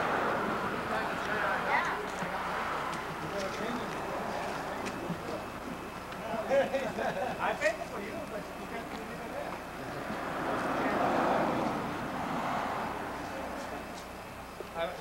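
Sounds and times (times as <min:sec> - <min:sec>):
broad noise: 0:00.0 - 0:15.0
group of people talking: 0:00.0 - 0:15.0.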